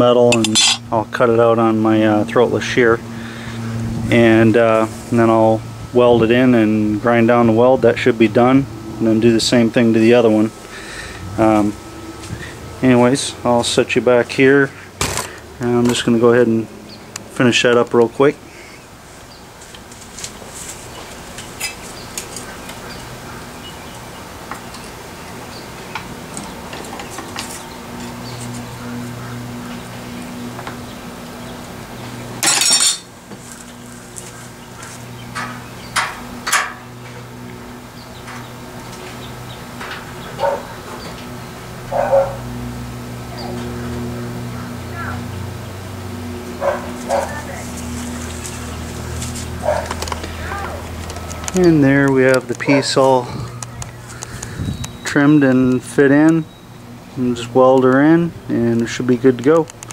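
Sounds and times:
steady low hum: 0:00.0 - 0:59.9
metal clanks: 0:00.3 - 0:00.9, 0:32.4 - 0:33.1
shear cutting sheet metal: 0:00.3 - 0:00.9.

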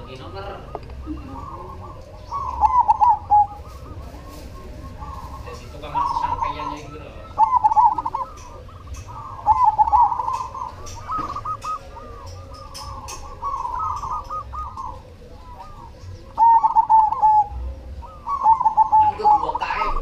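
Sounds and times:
dove cooing: 0:00.0 - 0:20.0.

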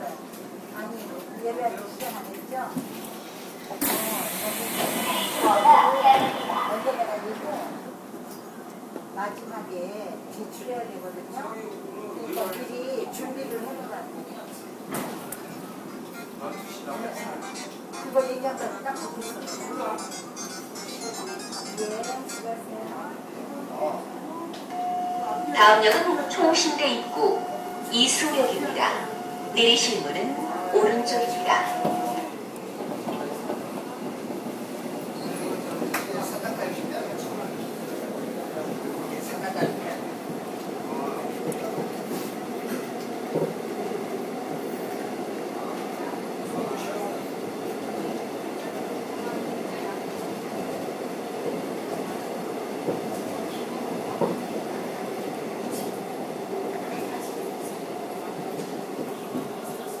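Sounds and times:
subway train rumbling: 0:00.0 - 1:00.0.

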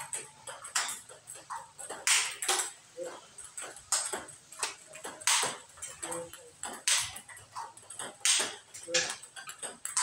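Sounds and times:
ball bouncing on table: 0:00.0 - 0:02.8, 0:03.5 - 0:10.0
ping pong ball hit by bat: 0:00.0 - 0:10.0.

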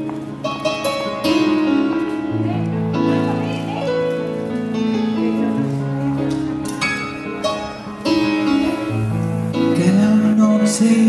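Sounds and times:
live pop-rock keyboard and guitar: 0:00.0 - 0:11.0.

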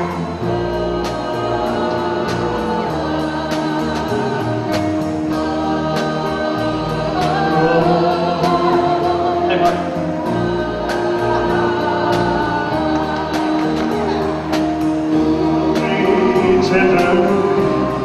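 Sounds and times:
backing singers harmonizing: 0:00.0 - 0:18.0
live band playing slow song: 0:00.0 - 0:18.0.

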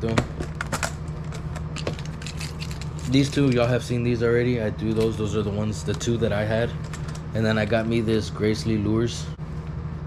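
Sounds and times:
steady low hum: 0:00.0 - 0:10.0
plastic lures clicking and rattling: 0:00.6 - 0:03.6.

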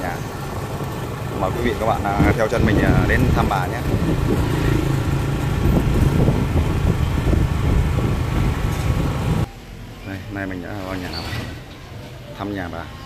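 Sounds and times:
road and wind noise: 0:00.0 - 0:13.0.

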